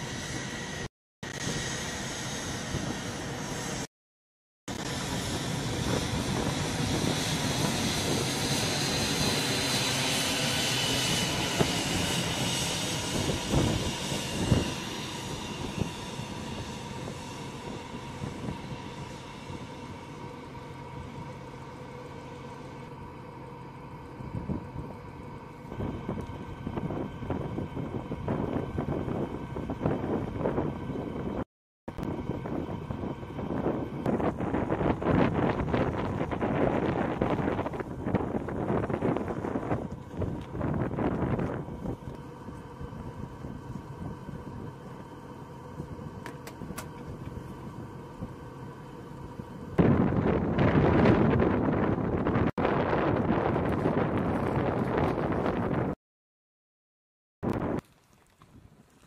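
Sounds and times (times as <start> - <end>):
jet passing overhead: 0.0 - 3.9, 4.7 - 21.4
wind gusts on microphone: 4.7 - 19.7, 25.7 - 44.8, 49.7 - 56.0.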